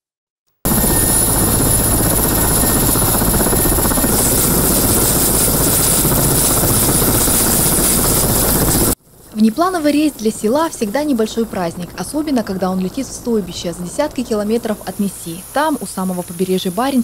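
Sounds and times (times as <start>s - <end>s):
helicopter turbine engines running: 0.7s - 17.0s.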